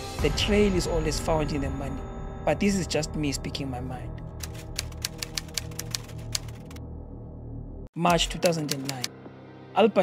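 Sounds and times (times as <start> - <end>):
typewriter keys clacking: 4.4 - 6.8, 8.1 - 9.1.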